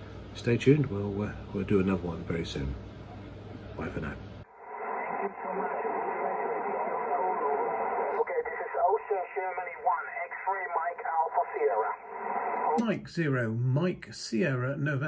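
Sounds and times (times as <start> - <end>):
radio band noise hiss: 3.8 - 13.3
thin radio voice: 4.9 - 12.8.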